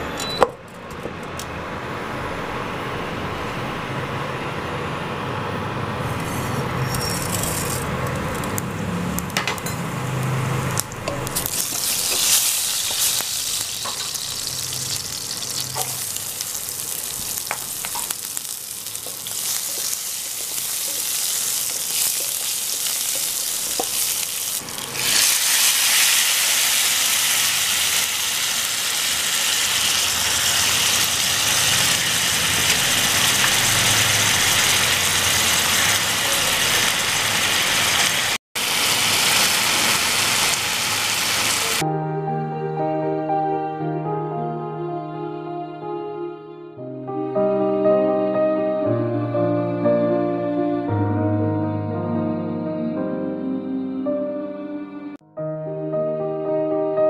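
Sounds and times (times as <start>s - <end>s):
hot oil sizzling in a pan: 10.7s - 41.8s
spatula stirring: 15.1s - 25.6s
music: 41.8s - 57.0s.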